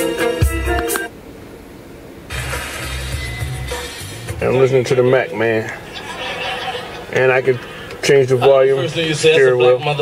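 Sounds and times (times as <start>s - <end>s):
music from car stereo: 0.0s - 1.2s, 2.3s - 10.0s.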